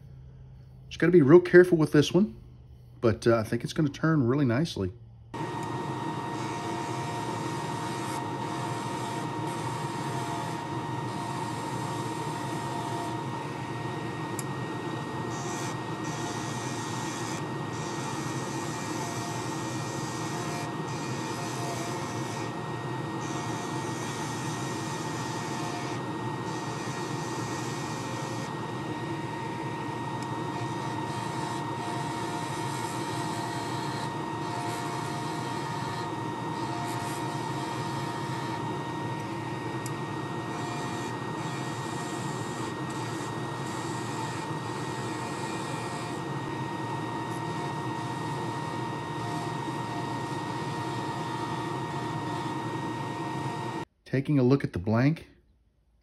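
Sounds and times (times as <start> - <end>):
wood lathe whine: 5.4 - 53.9.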